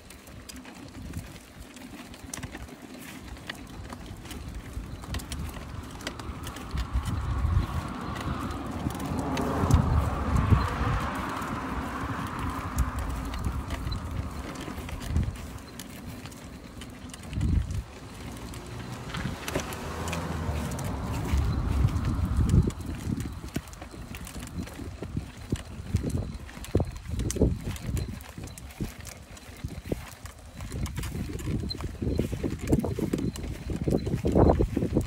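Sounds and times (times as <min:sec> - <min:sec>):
plastic toy rattling on concrete: 0:00.0 - 0:35.0
scattered clicks: 0:00.0 - 0:35.0
wind on microphone: 0:04.1 - 0:16.4, 0:17.0 - 0:18.1, 0:18.9 - 0:35.0.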